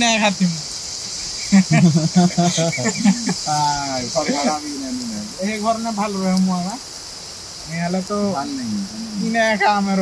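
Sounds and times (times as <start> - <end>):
insect chorus: 0.0 - 10.0
man laughing: 1.4 - 5.0.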